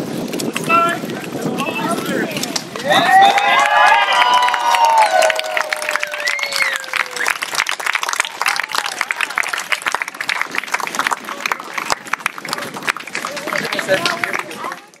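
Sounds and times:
people clapping: 0.4 - 15.0
falling whoop: 2.8 - 7.3
onlookers cheering: 2.8 - 9.9.

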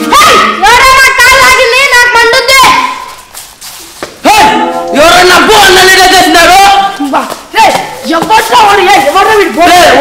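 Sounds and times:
boys talking loudly: 0.0 - 10.0.

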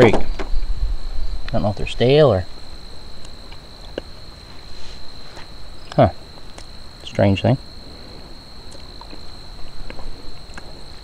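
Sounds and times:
high-pitched insect trill: 0.0 - 11.0
chewing crunchy crackers: 8.6 - 11.0.

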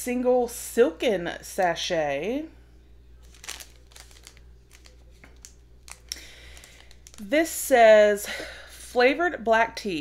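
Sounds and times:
steady low hum: 0.1 - 10.0
tea packets rustling and clicking: 3.2 - 7.5.

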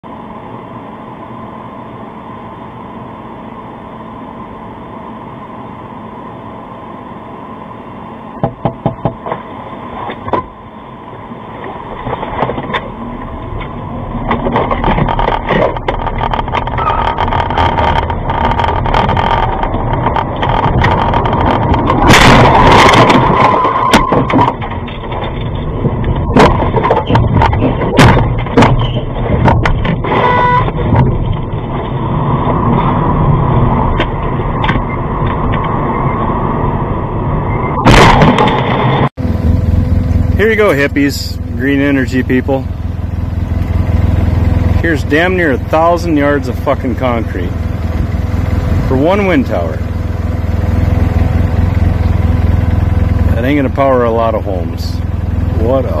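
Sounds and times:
car driving noise: 2.4 - 56.0
sharp knocks and bangs: 8.4 - 9.5, 26.2 - 31.4.

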